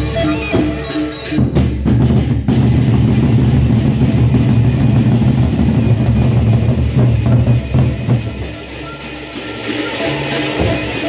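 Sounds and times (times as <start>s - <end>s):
barrel drums beaten rapidly: 0.0s - 11.0s.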